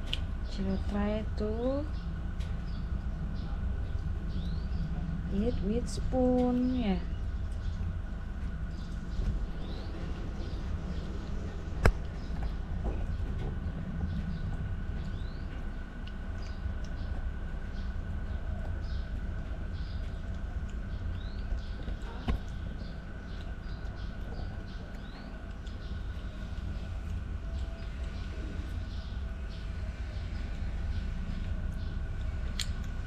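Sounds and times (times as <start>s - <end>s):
low background rumble: 0.0s - 33.0s
small birds chirping: 0.0s - 33.0s.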